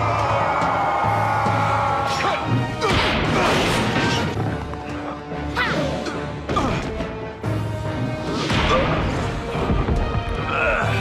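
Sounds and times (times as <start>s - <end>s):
dramatic cartoon fight music: 0.0s - 11.0s.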